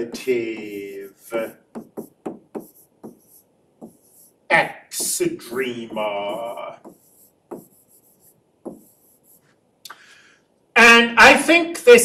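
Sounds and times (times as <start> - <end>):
stylus tapping on tablet: 0.0 - 4.3, 5.0 - 9.0.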